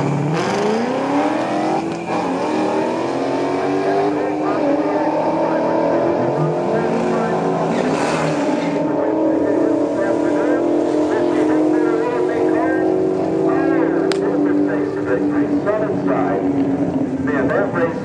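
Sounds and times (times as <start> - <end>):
people's voices: 0.4 - 18.0.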